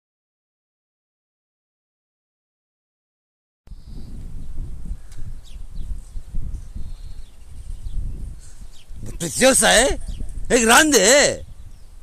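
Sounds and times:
faint bird chirps: 3.7s - 9.0s
wind buffeting microphone: 3.7s - 12.0s.

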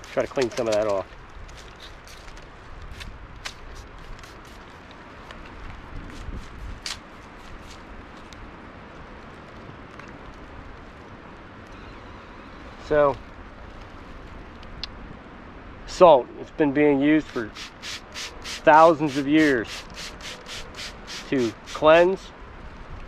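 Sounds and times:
spray bottle spritzes: 17.4s - 21.8s.

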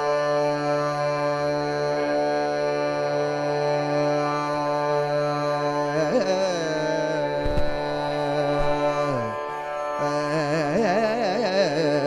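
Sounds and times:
person singing: 0.6s - 12.0s.

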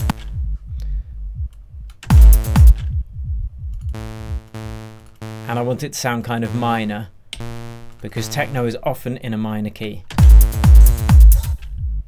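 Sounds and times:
techno drum pattern: 0.0s - 8.8s, 10.2s - 12.0s
low buzzy synth bass note: 2.1s - 5.6s, 7.4s - 8.6s.

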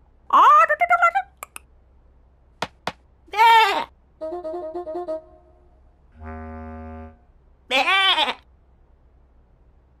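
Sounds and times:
short repeated musical notes: 4.2s - 7.1s
cartoon lamb bleating: 7.7s - 8.4s.

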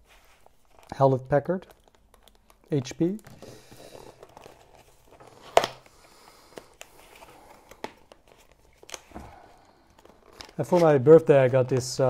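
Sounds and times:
cardboard rustling and scraping: 0.0s - 0.9s, 2.8s - 5.8s, 9.9s - 11.2s.

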